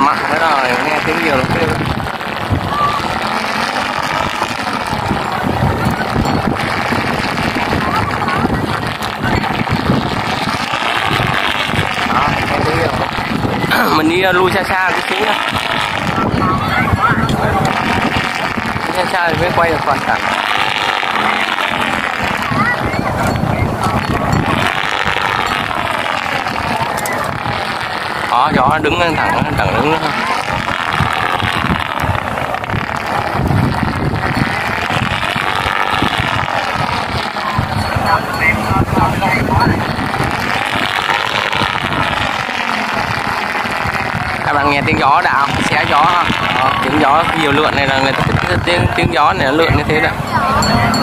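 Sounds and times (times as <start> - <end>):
kite rushing whir in wind: 0.0 - 51.0
wind buffeting microphone: 0.0 - 51.0.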